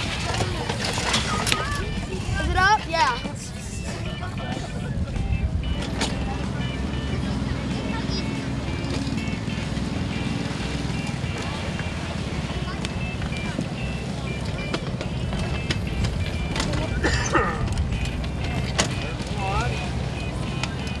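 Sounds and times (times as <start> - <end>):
spectators' voices: 0.0 - 21.0.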